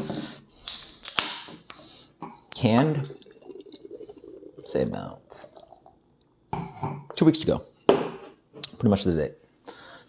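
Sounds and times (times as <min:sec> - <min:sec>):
carbonation hissing: 0:02.8 - 0:06.5.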